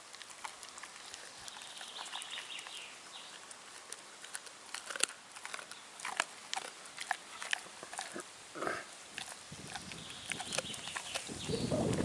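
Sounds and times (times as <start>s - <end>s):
dog chewing and licking: 0.0s - 12.0s.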